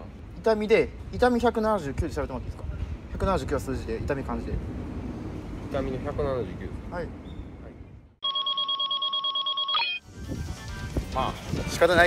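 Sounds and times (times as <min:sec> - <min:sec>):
electronic trilling ring tone: 0:08.2 - 0:10.0.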